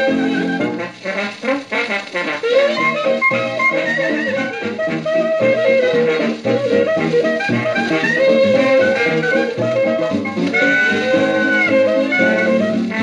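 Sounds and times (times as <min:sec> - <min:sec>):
early jazz record playing: 0:00.0 - 0:13.0.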